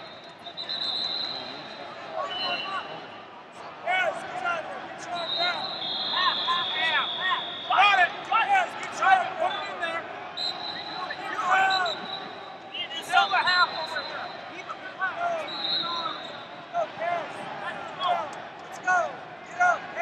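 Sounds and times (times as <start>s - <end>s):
arena background noise: 0.0s - 20.0s.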